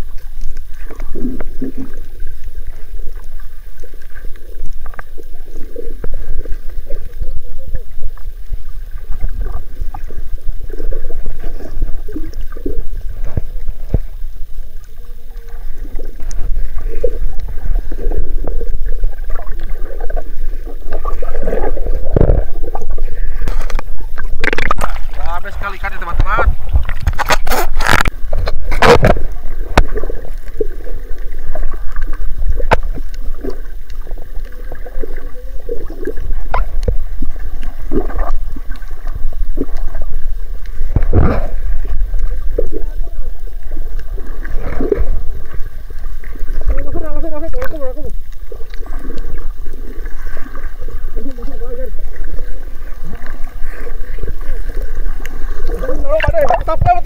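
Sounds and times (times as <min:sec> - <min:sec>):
muffled underwater water noise: 0:00.0 - 0:57.0
water splashing: 0:00.0 - 0:57.0.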